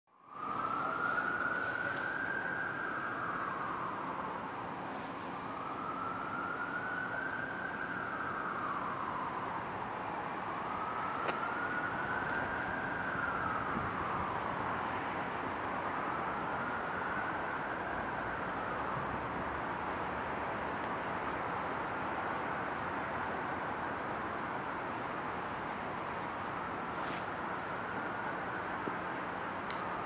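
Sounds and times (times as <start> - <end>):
emergency siren wailing: 0.1 - 30.0
street background noise: 0.1 - 30.0.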